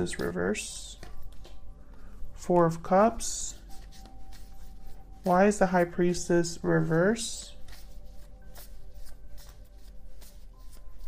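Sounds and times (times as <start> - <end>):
cards being shuffled: 0.0 - 6.2, 6.8 - 11.0
faint background music: 0.0 - 11.0.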